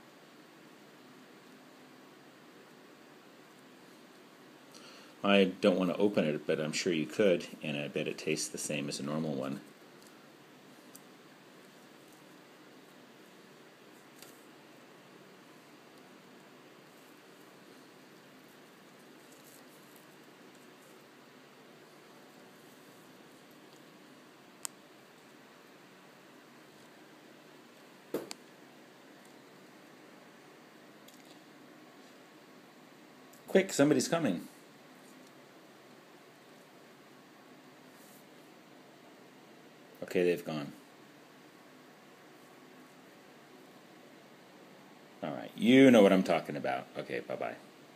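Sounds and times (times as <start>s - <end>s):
faint room hiss: 0.0s - 47.9s
soft tap: 28.1s - 28.4s.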